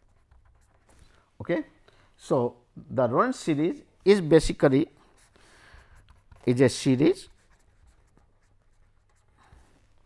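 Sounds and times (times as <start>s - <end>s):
pen scratching on paper: 0.0s - 1.2s, 5.1s - 10.0s.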